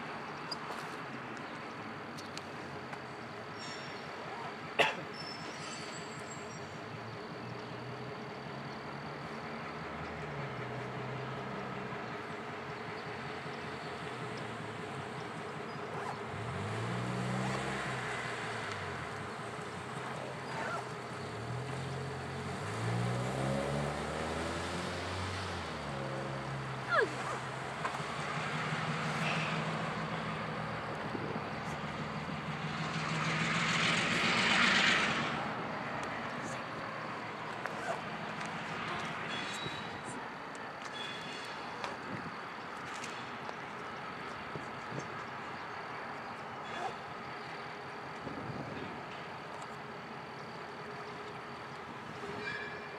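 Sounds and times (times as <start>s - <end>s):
locomotive engine idling and revving: 0.0s - 52.9s
sharp short squeal: 5.1s - 6.4s, 52.3s - 52.9s.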